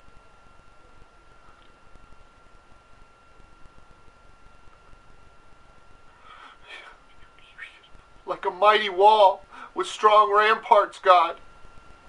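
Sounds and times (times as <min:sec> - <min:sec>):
man whispering: 0:06.5 - 0:08.0.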